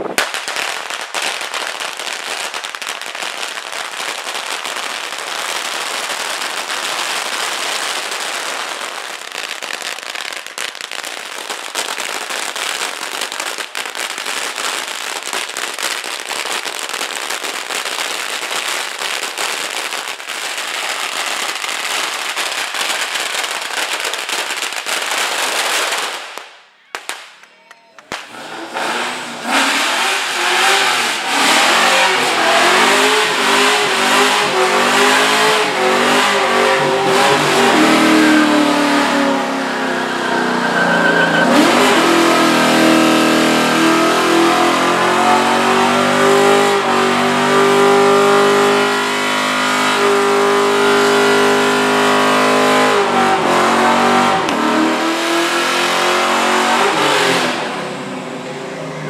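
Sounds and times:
car engine revving hard: 28.2 - 59.0.

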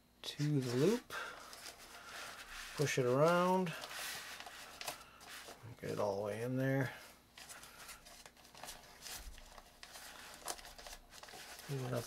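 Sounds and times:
fabric sack rustling: 0.4 - 5.7.

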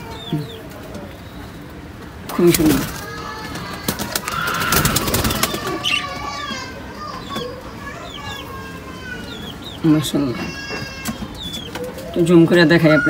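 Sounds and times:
wings flapping: 2.4 - 6.2.

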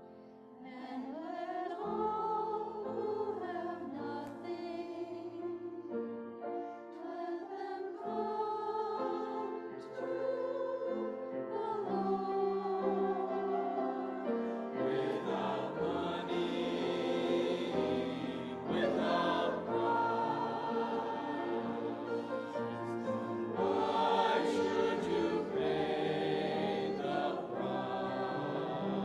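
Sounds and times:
choir singing: 0.0 - 29.0.

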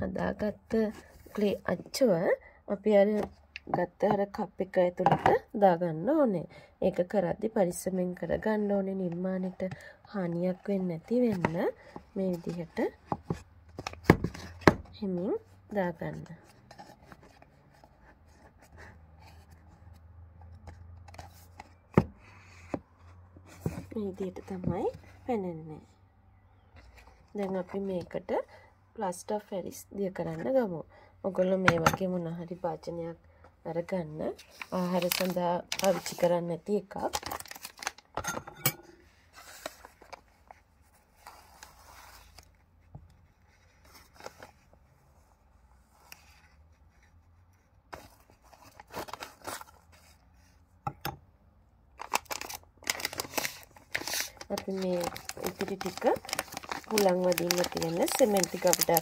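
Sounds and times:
packet rustling and crinkling: 34.5 - 38.2, 48.0 - 50.2, 52.0 - 59.0.

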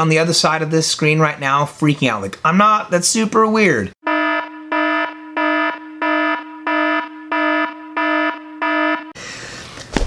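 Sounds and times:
buzzy pulsing alarm tone: 4.0 - 9.2.

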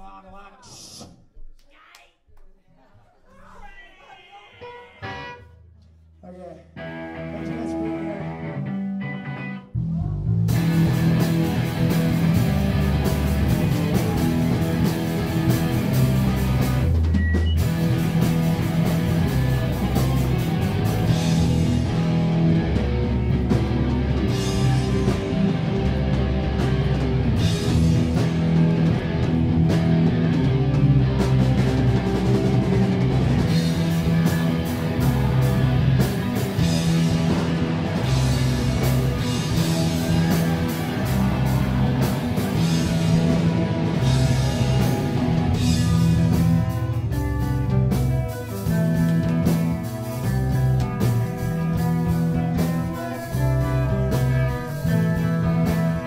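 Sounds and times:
electric guitar: 6.8 - 56.0
live rock band playing: 6.8 - 56.0.

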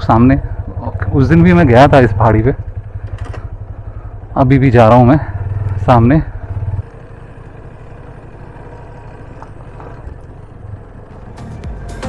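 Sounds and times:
motorcycle engine running: 0.0 - 12.0
bike rolling over rough dirt: 8.4 - 10.6.

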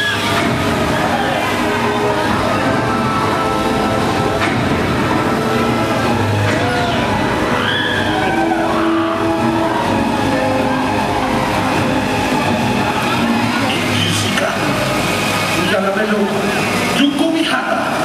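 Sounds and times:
amusement ride rumble: 0.0 - 18.0
riders screaming: 6.8 - 13.4.

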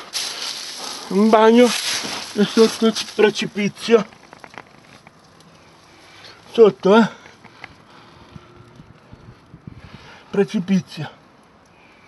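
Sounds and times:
low rumbles and bumps: 8.2 - 10.2
wind buffeting microphone: 8.2 - 10.2.

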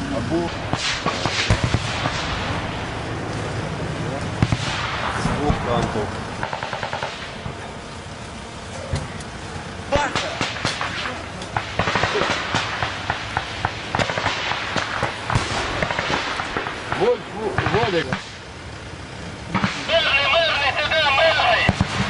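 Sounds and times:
rifle shots: 0.6 - 2.7, 4.4 - 5.6, 6.4 - 7.4, 10.0 - 18.4, 21.6 - 22.0
automatic gunfire bursts: 6.4 - 7.2, 10.1 - 18.0.

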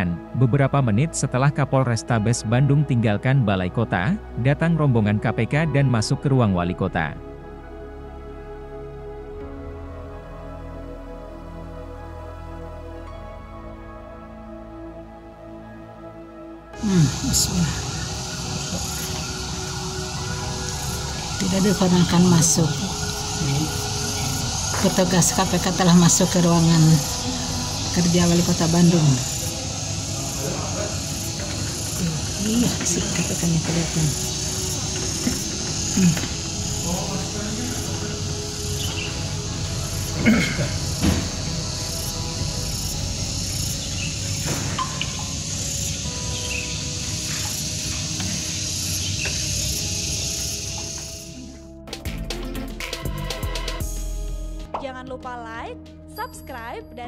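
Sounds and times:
indistinct voices: 16.8 - 46.2
faint chirps: 16.8 - 51.6
steady high hiss: 16.8 - 51.6.

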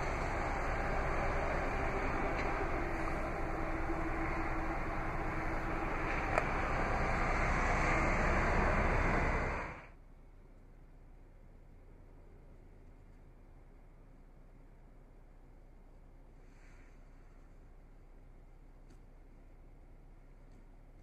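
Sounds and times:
faint hum: 0.0 - 21.0.

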